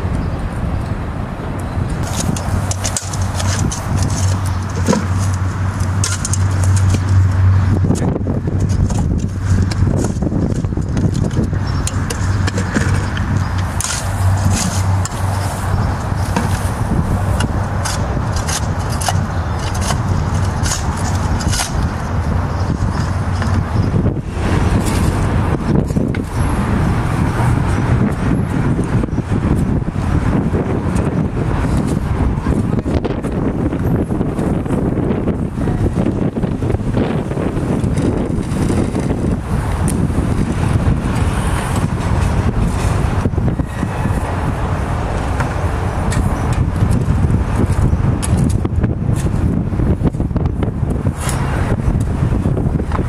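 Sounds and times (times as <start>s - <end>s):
road traffic: 0.0s - 53.0s
wind rumble on microphone: 0.0s - 53.0s
shovels scraping soil: 2.0s - 7.2s, 8.7s - 23.6s, 24.4s - 25.3s, 51.0s - 51.6s.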